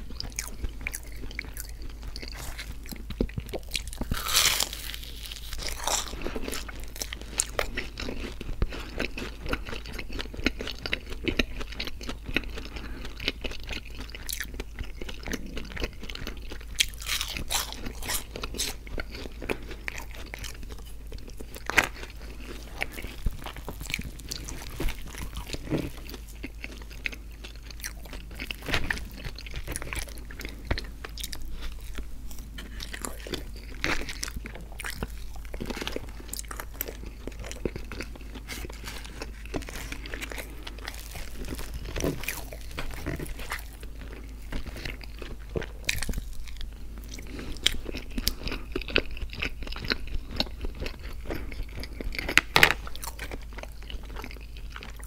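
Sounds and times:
biting and chewing food: 0:00.0 - 0:55.0.

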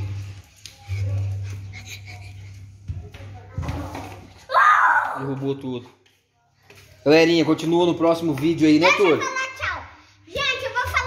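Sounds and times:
loud high cry: 0:04.5 - 0:05.3.

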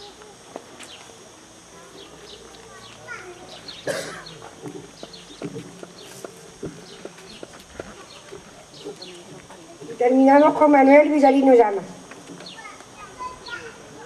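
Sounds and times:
murmur of voices: 0:00.0 - 0:14.0.

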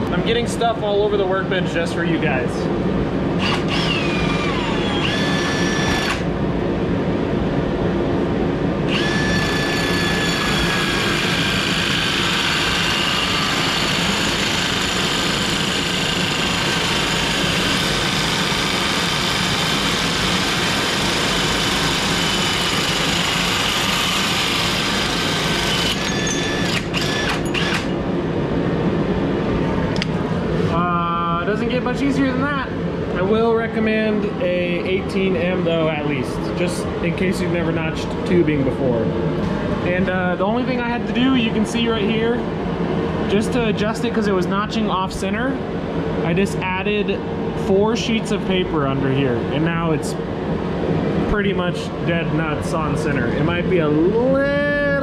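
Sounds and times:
drill cutting with hole saw: 0:03.4 - 0:06.3, 0:08.9 - 0:27.9.

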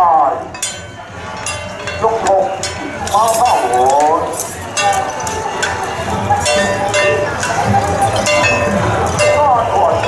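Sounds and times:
bright metallic clinking: 0:00.5 - 0:09.7.

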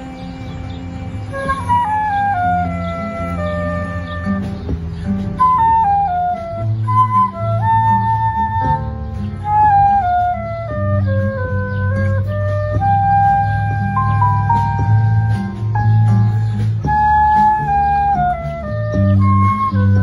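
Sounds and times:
electric bass and guitar: 0:00.0 - 0:20.0
flute melody: 0:00.0 - 0:20.0.

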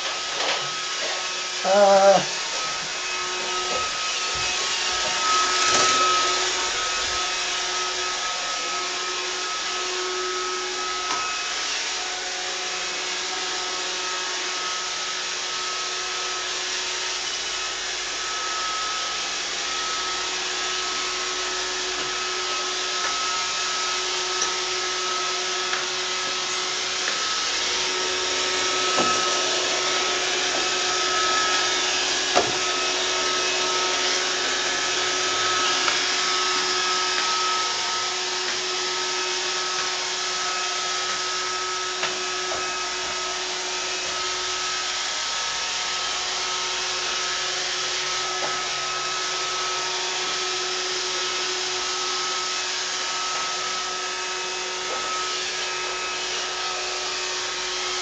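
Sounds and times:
robot vacuum whirring: 0:00.0 - 0:14.1, 0:14.8 - 0:58.0.

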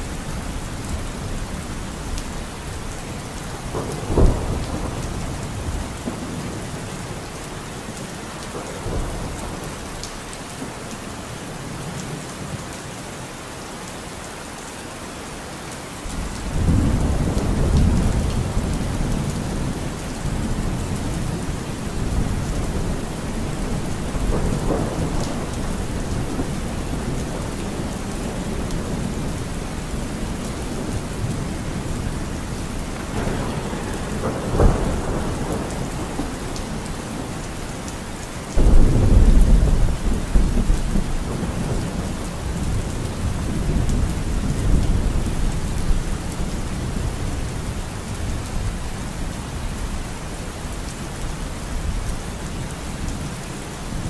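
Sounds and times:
steady rain: 0:00.0 - 0:54.0
rolling thunder: 0:03.6 - 0:06.6, 0:16.1 - 0:48.4
sharp thunder crack: 0:33.0 - 0:37.6, 0:38.6 - 0:42.0.

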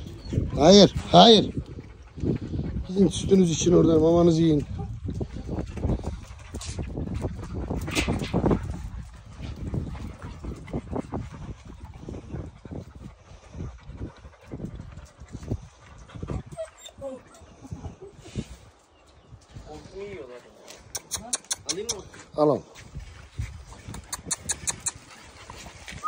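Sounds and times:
puppy whimper: 0:16.2 - 0:18.2.

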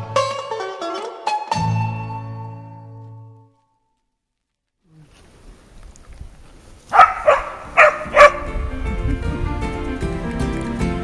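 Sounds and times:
dog barking: 0:06.9 - 0:08.5.

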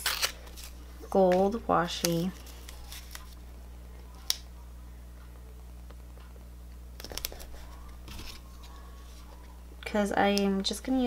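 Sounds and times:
tape crackling: 0:00.0 - 0:04.6, 0:05.2 - 0:11.0.

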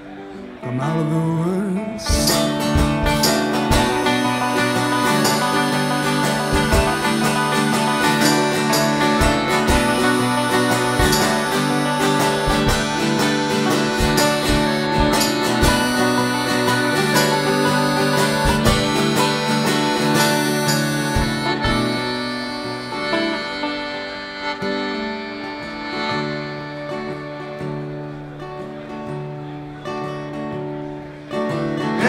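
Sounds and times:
strummed acoustic guitar: 0:00.0 - 0:32.0
banjo: 0:02.0 - 0:29.5
harmonica: 0:02.0 - 0:30.2
accordion: 0:02.0 - 0:30.6.

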